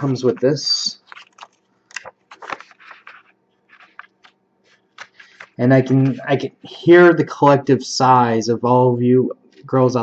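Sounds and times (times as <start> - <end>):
paper crinkling: 0.0 - 6.2.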